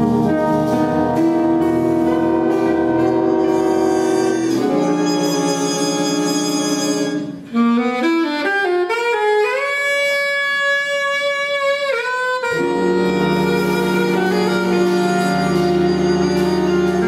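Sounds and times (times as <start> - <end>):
alto saxophone solo: 0.0 - 17.0
jazz band playing: 0.0 - 17.0.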